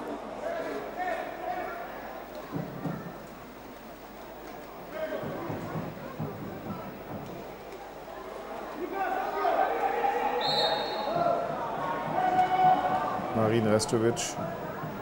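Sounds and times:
distant voices and shouts: 4.9 - 15.0.

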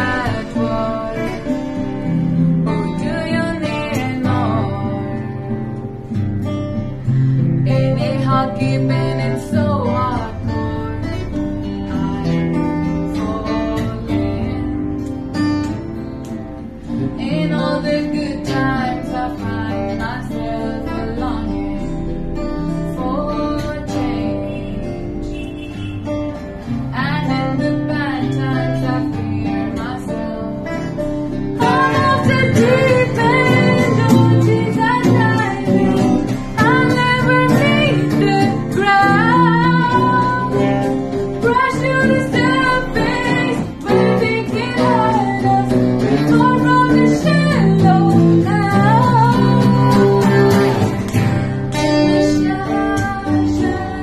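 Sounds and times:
woman singing: 0.0 - 5.8, 7.4 - 15.8, 16.8 - 54.0
strummed acoustic guitar: 0.0 - 54.0.

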